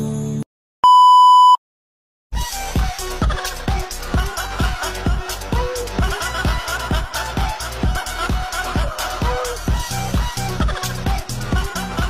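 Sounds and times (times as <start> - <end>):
music: 0.0 - 0.4, 2.4 - 12.0
high electronic beep: 0.8 - 1.6.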